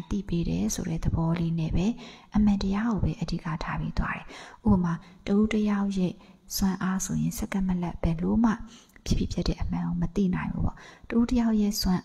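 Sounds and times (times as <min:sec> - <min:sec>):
woman talking into a microphone: 0:00.0 - 0:12.0.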